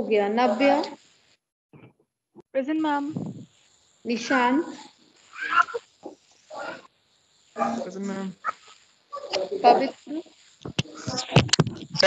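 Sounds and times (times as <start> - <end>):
person speaking over a call: 0.0 - 1.0, 7.6 - 8.6, 9.2 - 12.0.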